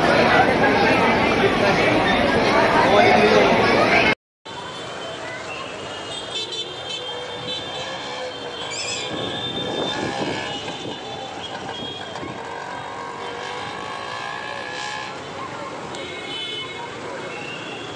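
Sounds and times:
crowd talking: 0.0s - 17.9s
motor traffic: 0.0s - 17.9s
horns tooting: 4.8s - 15.3s.

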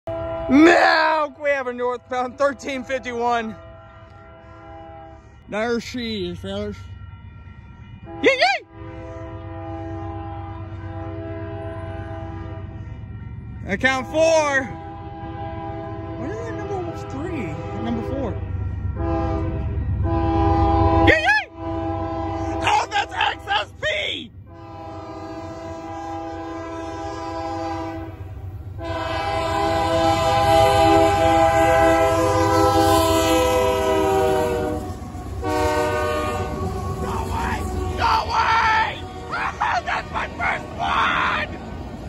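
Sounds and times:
locomotive air horn blasts: 0.0s - 23.8s, 24.4s - 40.9s
train rumbling: 0.0s - 42.0s.

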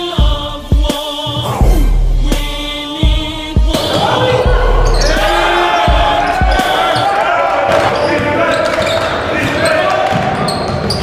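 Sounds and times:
voices and shouts in hall: 3.8s - 11.0s
basketball bouncing on court: 7.7s - 11.0s.

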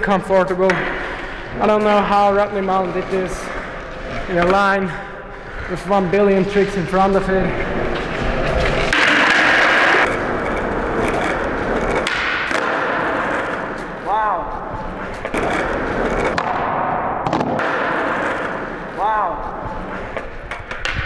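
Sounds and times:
skateboard wheels rolling on concrete: 0.1s - 21.0s
skateboard clacking on ground: 7.9s - 14.0s.

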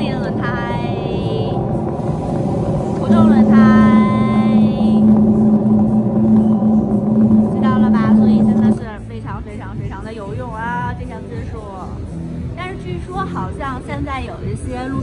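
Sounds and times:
tyre running noise from loudspeaker: 0.0s - 8.9s
loud steady low hum: 0.0s - 15.0s.

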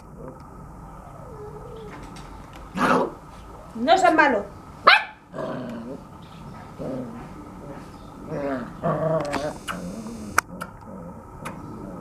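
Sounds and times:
puppies whimpering and growling: 0.9s - 2.2s.

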